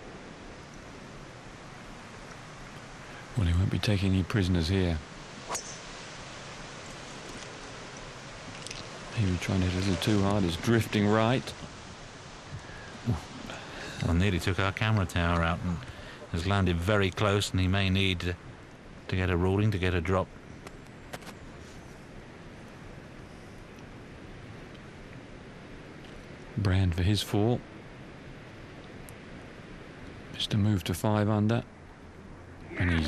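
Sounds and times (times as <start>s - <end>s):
outdoor background hiss: 0.0s - 33.0s
golf club striking ball: 5.4s - 6.0s
faint clicks: 6.8s - 9.0s.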